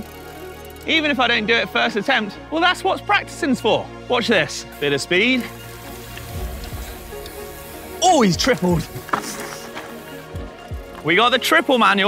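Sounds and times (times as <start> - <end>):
background music: 0.0 - 12.0
bike tyres rolling on gravel: 4.8 - 12.0
low rumbles: 5.9 - 9.8.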